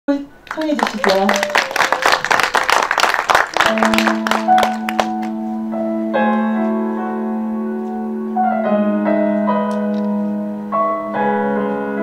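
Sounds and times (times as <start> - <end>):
audience clapping: 0.4 - 5.4
instrumental music with held notes: 3.7 - 12.0.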